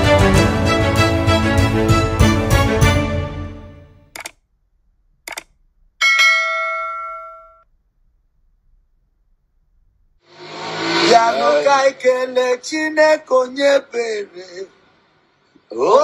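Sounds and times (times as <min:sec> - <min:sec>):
bell-like ding: 0:06.0 - 0:07.6
intro music: 0:10.3 - 0:12.1.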